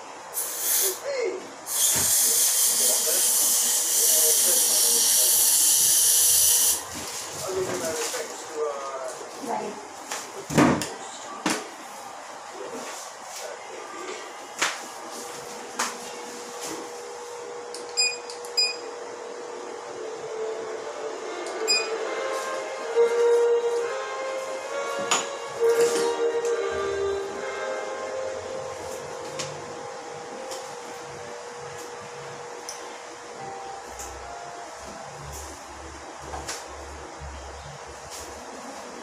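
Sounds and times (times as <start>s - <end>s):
steady hum: 0.0s - 39.0s
background music: 19.9s - 31.8s.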